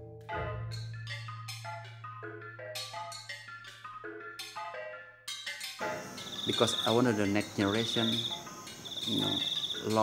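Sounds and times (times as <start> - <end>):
crickets trilling: 5.8 - 10.0
man speaking: 6.4 - 8.3, 9.0 - 10.0.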